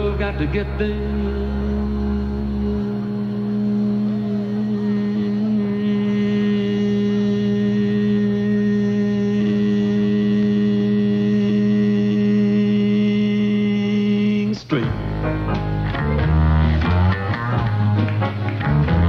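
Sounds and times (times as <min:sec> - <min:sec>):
loud steady hum: 0:00.0 - 0:18.0.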